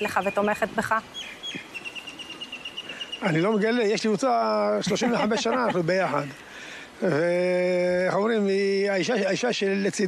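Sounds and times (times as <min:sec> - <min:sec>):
bird chirping and trilling: 0:00.0 - 0:04.2.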